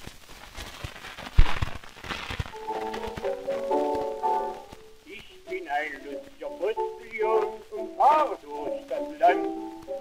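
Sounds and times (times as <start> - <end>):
record hiss and crackle: 0.0 - 10.0
piano introduction: 2.5 - 10.0.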